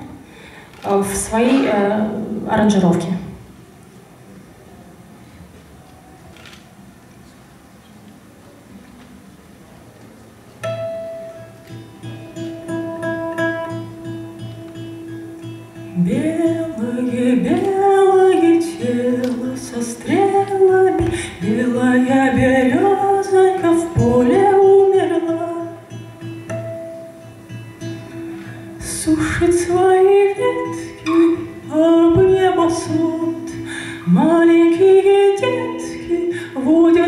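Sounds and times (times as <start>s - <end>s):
acoustic guitar: 0.0s - 4.5s, 5.2s - 37.0s
woman singing: 16.0s - 26.1s, 28.7s - 37.0s.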